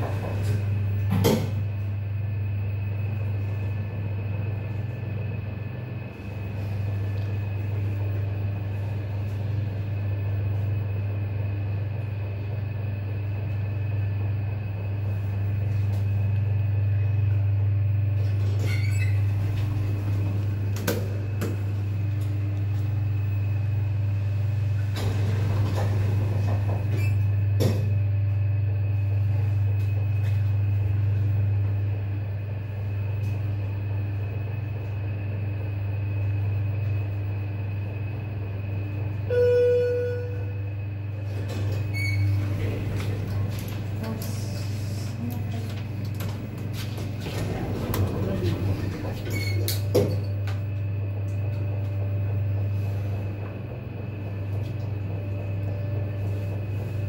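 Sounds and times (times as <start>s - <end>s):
elevator low hum: 0.0s - 57.0s.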